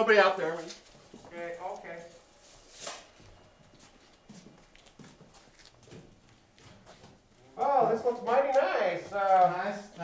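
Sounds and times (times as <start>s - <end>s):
footsteps on concrete floor: 0.5s - 10.0s.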